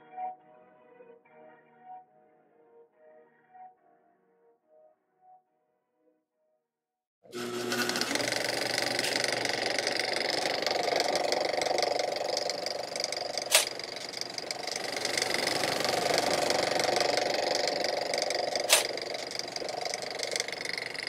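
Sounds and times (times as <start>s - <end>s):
fast mechanical rattle: 7.3s - 21.0s.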